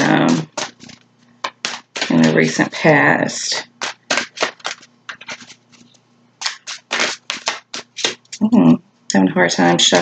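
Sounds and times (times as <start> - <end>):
cards being shuffled: 0.0 - 2.7, 3.6 - 8.5.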